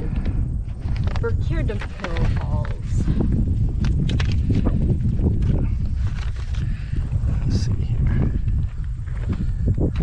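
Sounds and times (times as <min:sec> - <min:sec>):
steady low rumble: 0:00.0 - 0:10.0
paper map crackling: 0:00.8 - 0:03.2, 0:03.8 - 0:06.8.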